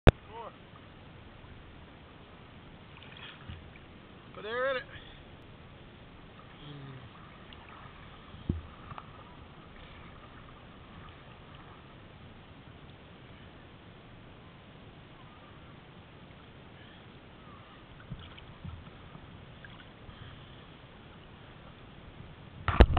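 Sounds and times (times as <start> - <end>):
faint outdoor background noise: 0.0 - 22.9
sea water and small waves: 0.0 - 22.9
soft low bump: 7.8 - 11.8, 18.0 - 19.3
faint knocks: 8.2 - 9.2.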